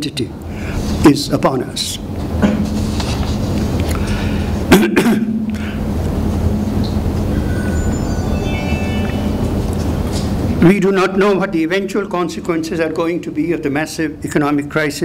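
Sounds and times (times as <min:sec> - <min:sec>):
person coughing: 0:04.7 - 0:05.4
low rumble and hum: 0:05.3 - 0:10.6.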